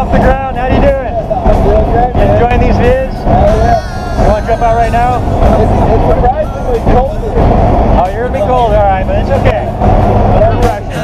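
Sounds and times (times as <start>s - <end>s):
plane engine and wind noise: 0.0s - 11.0s
raised voices: 1.1s - 11.0s.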